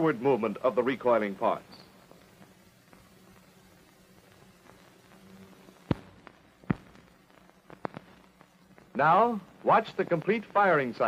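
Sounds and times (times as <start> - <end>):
film soundtrack hiss and hum: 0.0 - 11.0
film clicks and pops: 1.8 - 9.0.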